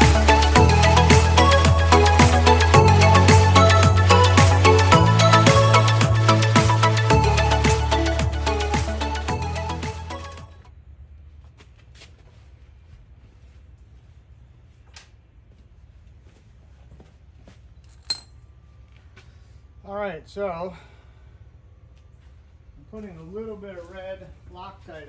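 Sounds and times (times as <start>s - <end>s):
steady low hum: 0.0s - 25.0s
light metal clinks: 17.9s - 18.5s.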